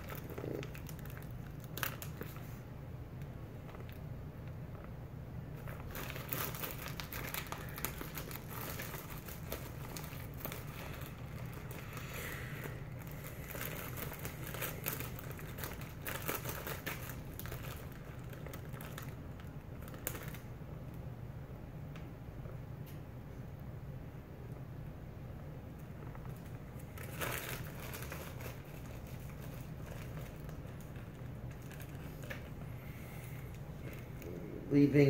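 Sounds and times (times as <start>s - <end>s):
plastic bag crinkling: 0.0s - 2.7s, 5.5s - 20.5s, 25.9s - 35.0s
steady low hum: 0.0s - 35.0s.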